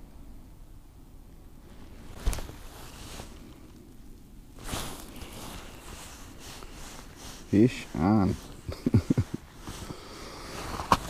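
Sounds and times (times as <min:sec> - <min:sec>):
rustle of clothing and gear: 0:01.6 - 0:03.9, 0:04.5 - 0:11.0.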